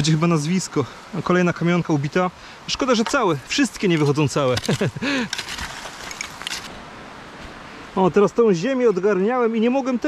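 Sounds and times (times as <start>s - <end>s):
metal spade scraping soil: 3.0s - 6.8s.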